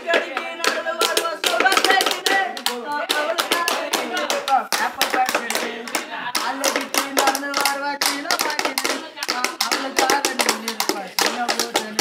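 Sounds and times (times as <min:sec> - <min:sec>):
sticks beating bamboo tubes: 0:00.0 - 0:12.0.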